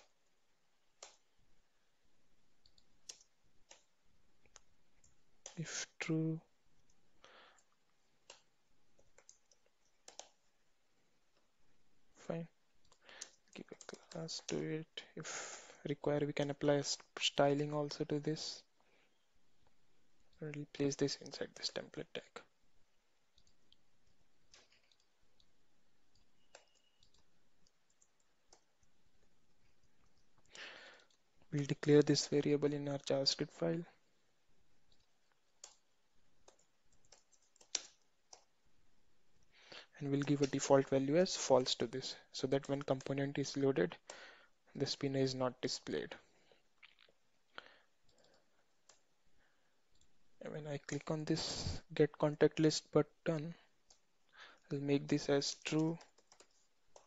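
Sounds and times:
computer keyboard keystrokes: 1.0 - 1.2, 2.6 - 3.9, 8.2 - 10.4, 26.1 - 28.9, 34.9 - 35.8, 36.4 - 38.5, 55.4 - 57.0.

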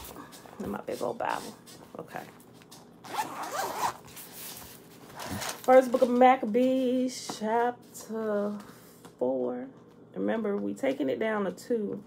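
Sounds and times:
zipper being pulled open: 3.0 - 4.2.

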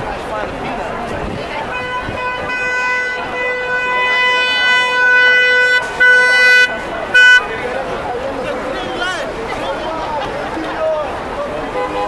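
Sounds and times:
car horn blasts: 1.7 - 7.5, 11.7 - 12.0.

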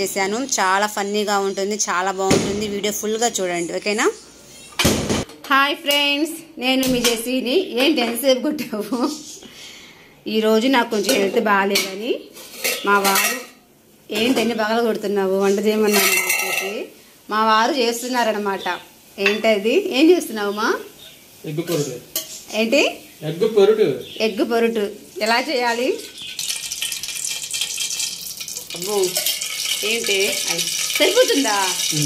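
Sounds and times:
food sizzling in hot oil: 0.0 - 4.8, 10.7 - 32.0
metal utensils clinking on dish: 11.0 - 13.6, 15.5 - 16.8, 25.7 - 32.0.

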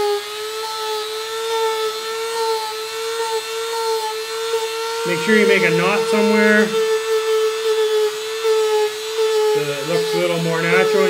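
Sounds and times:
rotary tool whining: 0.0 - 11.0.

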